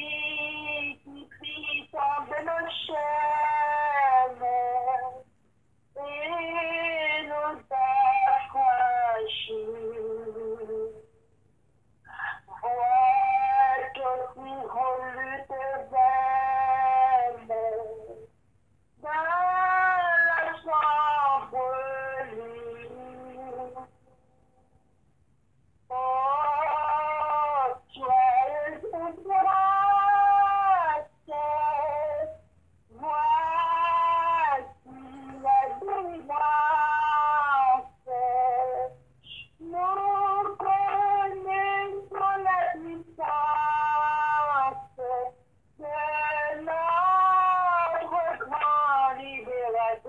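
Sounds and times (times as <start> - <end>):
solo voice singing: 0.0 - 5.3, 6.0 - 11.1, 12.6 - 18.3, 19.0 - 23.9, 25.9 - 50.0.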